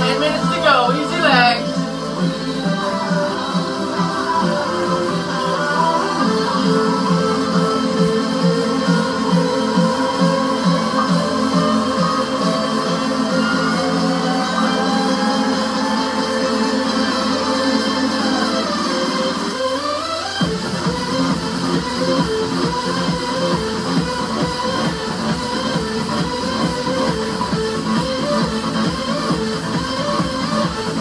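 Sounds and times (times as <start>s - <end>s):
electronic dance music: 0.0s - 31.0s
synth rising sweep: 8.4s - 19.8s.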